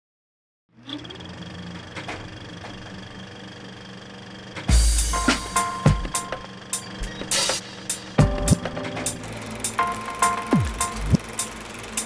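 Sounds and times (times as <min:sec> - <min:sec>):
mechanical hum with high whine: 0:00.7 - 0:12.0.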